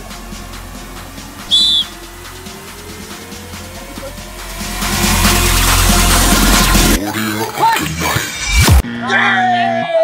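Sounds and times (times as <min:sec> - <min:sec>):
short whistle blast: 0:01.4 - 0:02.0.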